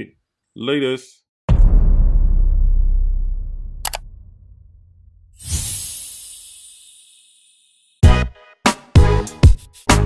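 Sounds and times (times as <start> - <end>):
deep boom: 1.5 - 5.4.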